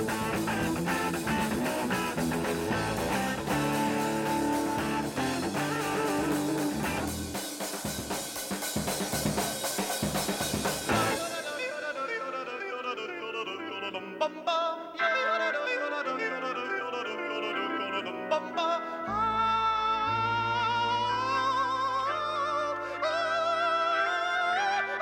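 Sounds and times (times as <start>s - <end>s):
man yodeling: 0.0s - 7.3s, 10.9s - 25.0s
man singing with vibrato: 0.0s - 7.6s, 10.8s - 25.0s
band holding low chords: 0.0s - 11.3s
organ chords: 0.0s - 12.0s, 13.5s - 25.0s.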